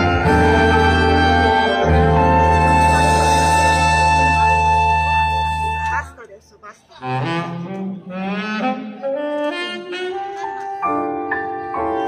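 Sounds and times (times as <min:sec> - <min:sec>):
saxophone solo: 0:00.0 - 0:06.2, 0:07.0 - 0:12.0
brass section: 0:00.0 - 0:06.3, 0:07.0 - 0:11.3.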